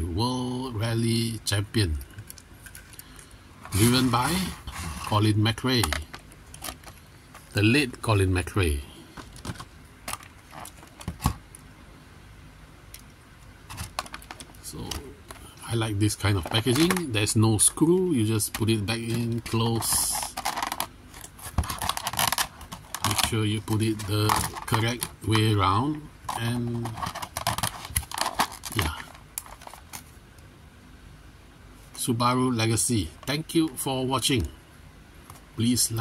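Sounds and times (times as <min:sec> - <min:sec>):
plastic packaging crinkling: 0:05.8 - 0:07.5, 0:09.2 - 0:11.4, 0:13.7 - 0:15.5, 0:16.2 - 0:17.2, 0:18.4 - 0:30.2.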